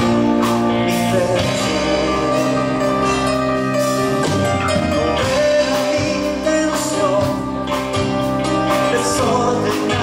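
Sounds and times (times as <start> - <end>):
drums: 0.0 - 10.0
electric guitar: 0.0 - 10.0
man singing: 0.0 - 10.0.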